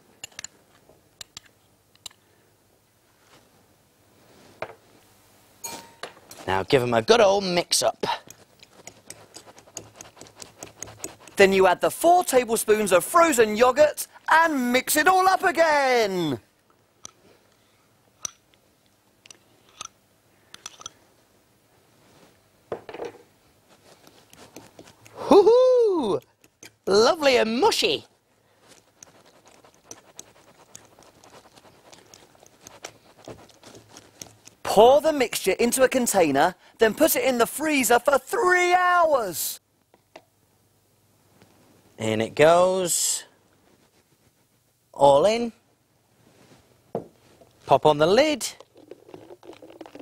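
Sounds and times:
spoon clinking against glass bowl: 5.6 - 6.4.

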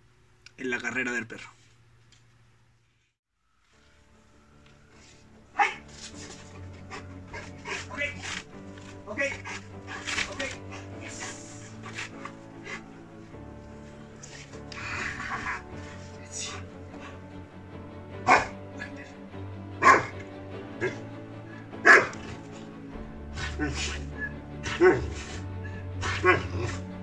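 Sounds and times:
background music: 3.6 - 27.0
dog vocalizing: 6.8 - 8.4, 9.3 - 13.0, 18.3 - 18.6, 19.8 - 20.2, 21.8 - 22.6, 26.0 - 26.8.

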